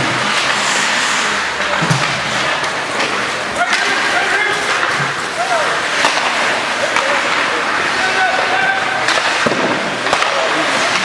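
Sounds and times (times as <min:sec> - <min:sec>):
skates scraping on ice: 0:00.0 - 0:11.0
sticks and puck clacking: 0:00.0 - 0:11.0
voices in the stands: 0:00.0 - 0:11.0.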